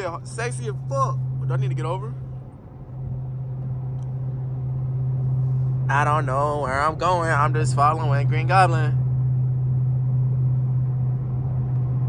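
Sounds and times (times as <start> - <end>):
car engine droning in cabin: 0.0 - 12.0.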